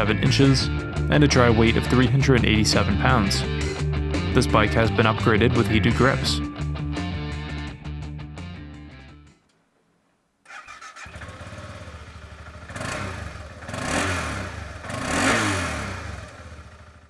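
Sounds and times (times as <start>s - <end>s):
motorcycle engine revving: 10.5s - 17.0s
motorcycle engine starting: 10.5s - 17.0s.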